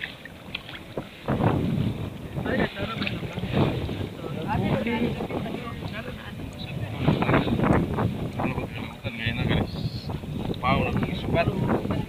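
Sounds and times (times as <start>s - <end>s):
low rumble of sea: 0.0s - 12.0s
wind noise on microphone: 0.0s - 12.0s.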